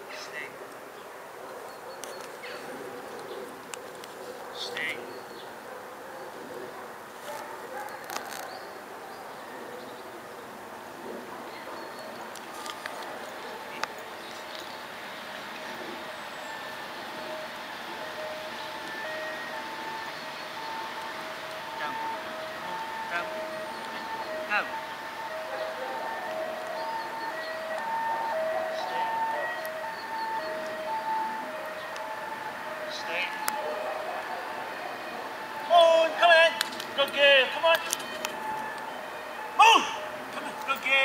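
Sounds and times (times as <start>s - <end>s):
steady background noise: 0.0s - 41.0s.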